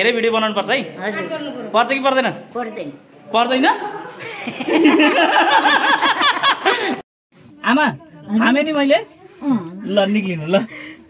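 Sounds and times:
people laughing: 3.6 - 7.0.

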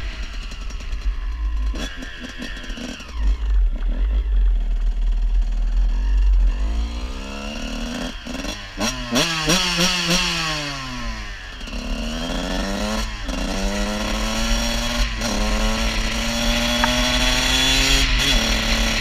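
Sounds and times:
dirt bike engine revving: 0.0 - 19.0.

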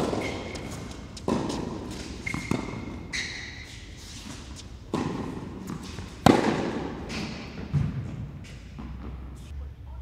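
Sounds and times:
racquet hitting tennis ball: 0.0 - 9.3.

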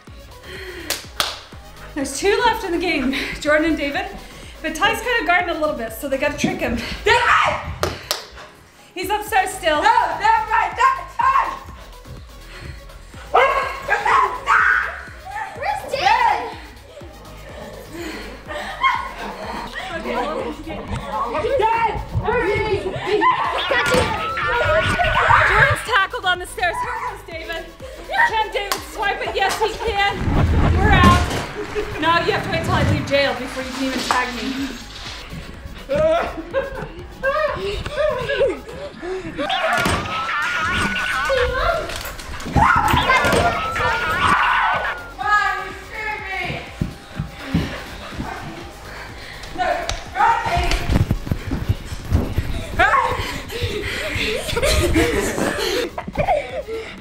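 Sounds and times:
children's excited voices: 7.1 - 7.7, 9.4 - 11.8, 13.3 - 18.0, 18.6 - 34.9, 35.8 - 46.7, 49.6 - 50.9, 52.4 - 55.8
dog barking excitedly: 13.3 - 14.9, 42.4 - 45.0
dog yipping and whining: 23.2 - 25.8, 39.4 - 45.1.

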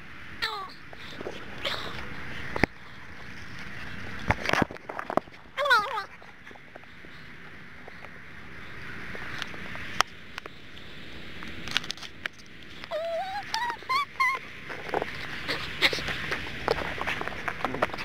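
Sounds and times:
high wavering cry: 12.9 - 14.5.

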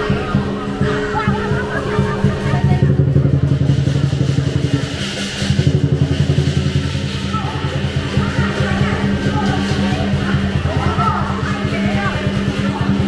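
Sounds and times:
cymbals ringing: 0.0 - 13.0
drum beaten in fast roll: 0.0 - 13.0.

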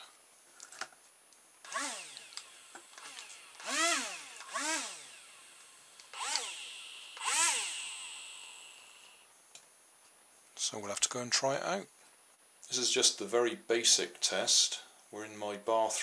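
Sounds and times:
small electric motors whining: 1.6 - 9.3.

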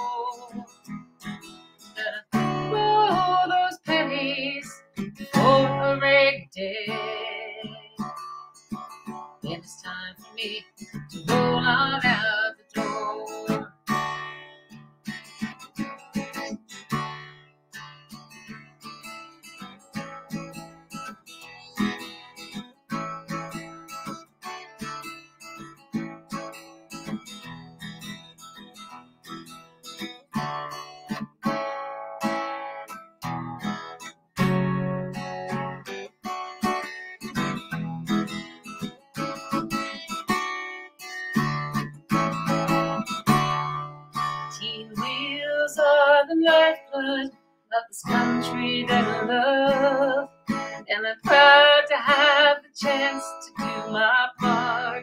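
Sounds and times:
acoustic guitar strumming: 0.0 - 55.0.

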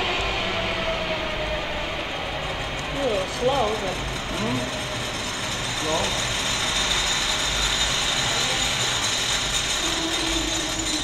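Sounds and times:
jet engine running: 0.0 - 10.1.

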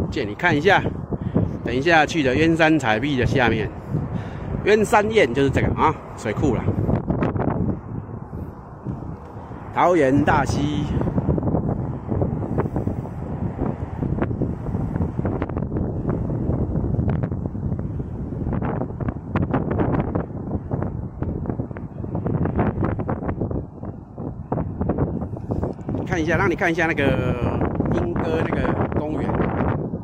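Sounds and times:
wind buffeting microphone: 0.0 - 30.0.

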